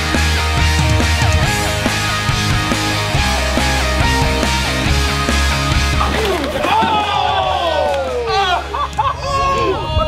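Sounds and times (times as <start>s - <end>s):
rock music with heavy beat: 0.0s - 6.2s
people yelling and shouting: 6.0s - 10.0s.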